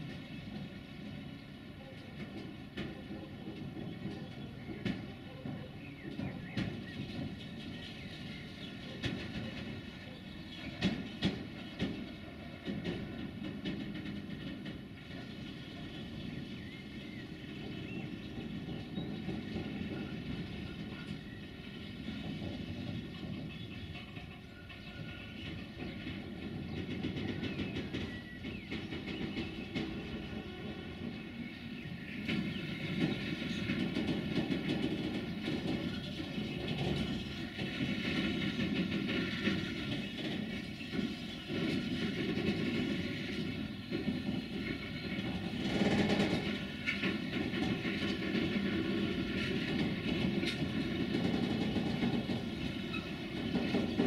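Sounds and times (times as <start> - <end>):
train rumble: 0.0 - 54.0
train wheels clicking over rail joints: 0.0 - 54.0.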